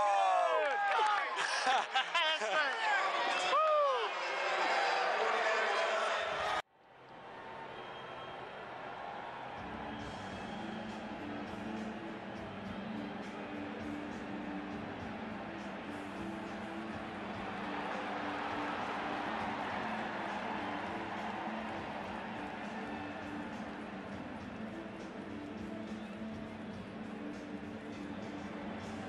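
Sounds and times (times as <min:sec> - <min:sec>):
stadium crowd noise: 0:00.0 - 0:29.0.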